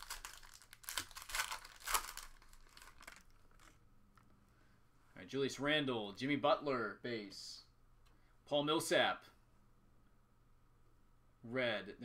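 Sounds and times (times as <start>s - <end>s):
foil wrapper crinkling: 0.0s - 3.8s.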